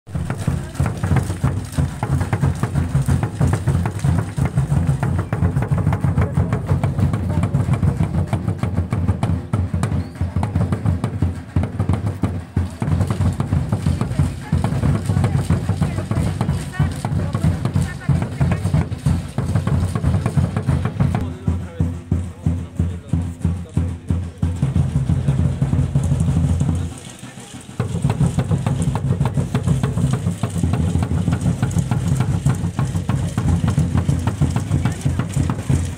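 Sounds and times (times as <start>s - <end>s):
crowd talking: 0.1s - 35.9s
fast steady drumming: 0.1s - 35.9s.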